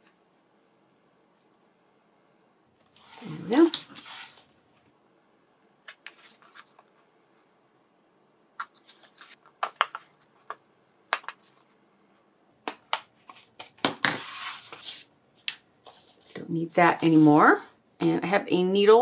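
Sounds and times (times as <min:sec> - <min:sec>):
paper rustling: 0:02.9 - 0:04.5, 0:05.9 - 0:07.1, 0:08.6 - 0:10.6.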